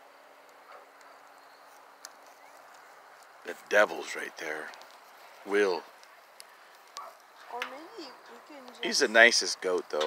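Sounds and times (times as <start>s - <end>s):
bonfire crackling: 0.0s - 10.0s.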